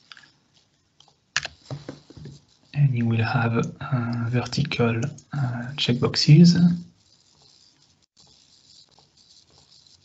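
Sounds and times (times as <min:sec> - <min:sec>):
keyboard and mouse clicks: 0:01.4 - 0:02.4.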